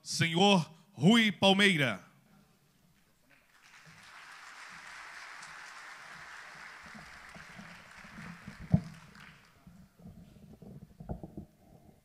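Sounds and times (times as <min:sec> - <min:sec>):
audience applauding: 0:03.3 - 0:09.9.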